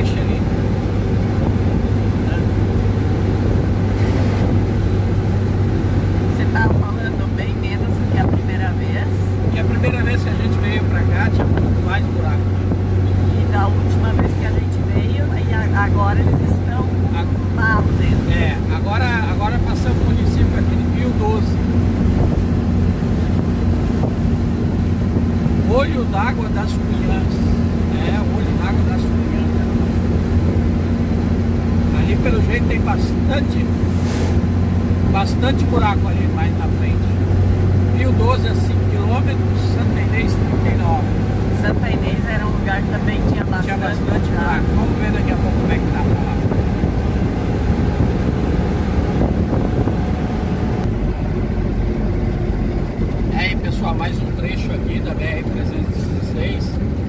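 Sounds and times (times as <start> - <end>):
diesel truck engine drone: 0.0 - 57.0
road and tyre noise: 0.0 - 57.0.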